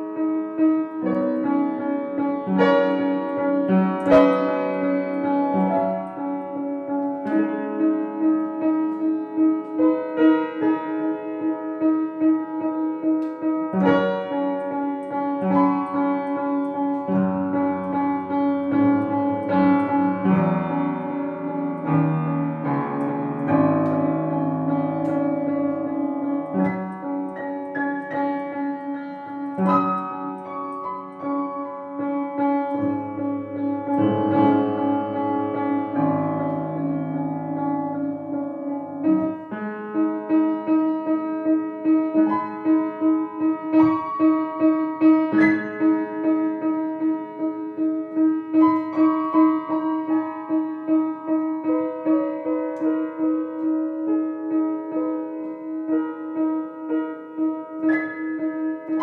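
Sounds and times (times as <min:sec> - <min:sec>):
solo piano classical piece: 0:00.0 - 0:59.0.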